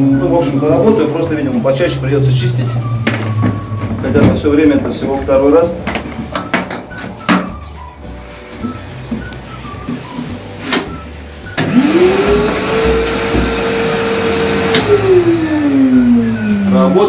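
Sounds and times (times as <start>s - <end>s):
shop vacuum motor whining: 9.9s - 17.0s.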